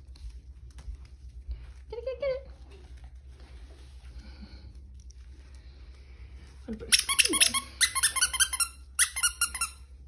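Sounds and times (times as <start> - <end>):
dog toy squeaking: 6.9 - 9.8.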